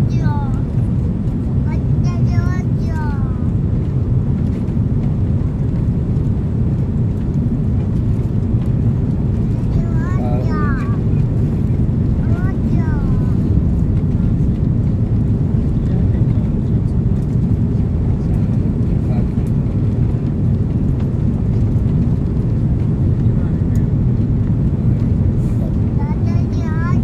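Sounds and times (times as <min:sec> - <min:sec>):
aircraft cabin engine noise: 0:00.0 - 0:27.0
airflow over wing: 0:00.0 - 0:27.0.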